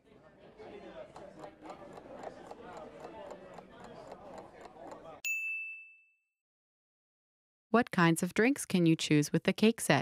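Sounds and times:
bright timer ding: 5.2 - 6.2.

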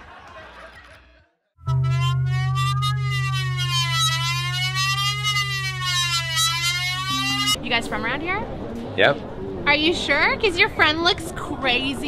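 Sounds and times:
wailing siren: 1.7 - 7.6
low hum: 1.7 - 10.3.

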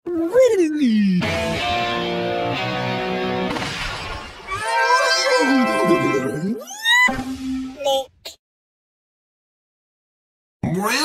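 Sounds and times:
noisy splat burst: 3.4 - 4.5.

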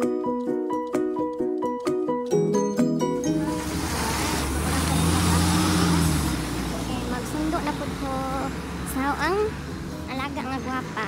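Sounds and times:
bus driving past: 3.0 - 11.0.

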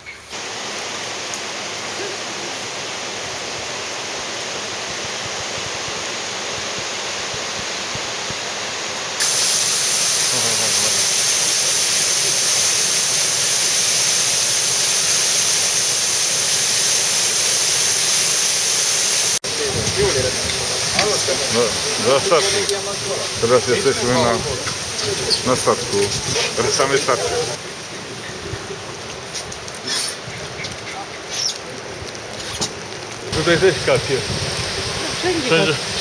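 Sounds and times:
waterfall rushing: 0.3 - 29.0, 33.3 - 36.0.

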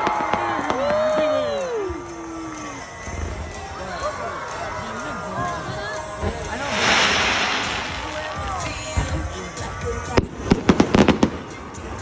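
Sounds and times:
fireworks crackling: 6.2 - 12.0.

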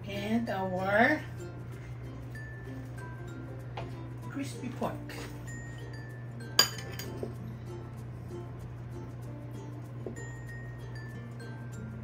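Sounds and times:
soft background music: 0.0 - 12.0
metal utensil clinking ceramic bowl: 6.6 - 7.3.

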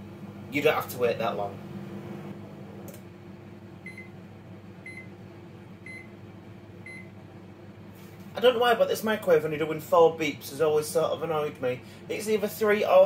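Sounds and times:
microwave oven humming: 0.0 - 13.0.

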